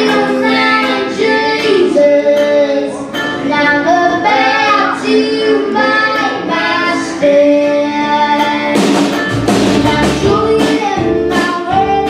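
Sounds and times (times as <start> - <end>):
country band playing: 0.0 - 12.0
girl singing: 0.0 - 12.0.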